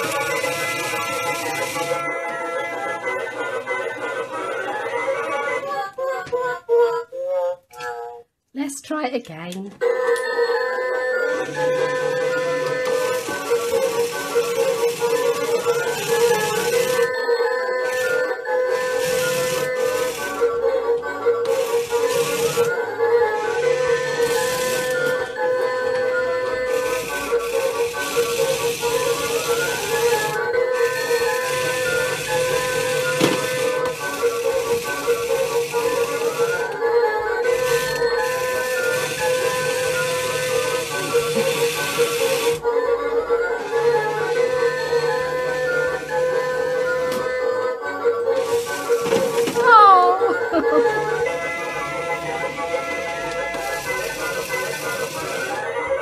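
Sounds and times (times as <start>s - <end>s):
claw machine motor whirring: 0.0s - 2.2s, 11.4s - 17.1s, 17.8s - 25.4s, 26.0s - 42.7s, 48.3s - 51.4s, 53.3s - 55.7s.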